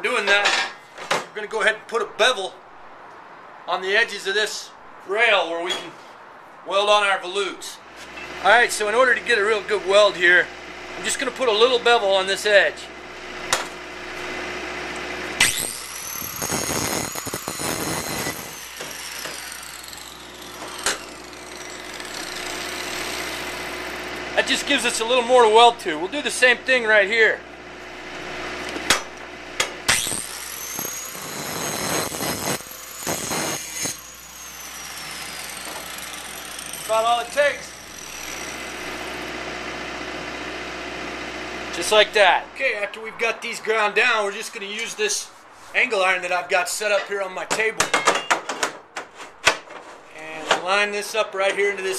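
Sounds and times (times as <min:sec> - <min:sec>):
mechanical motor hum: 0:12.9 - 0:25.1, 0:27.4 - 0:42.6
angle grinder grinding steel: 0:13.2 - 0:26.6, 0:27.8 - 0:42.6.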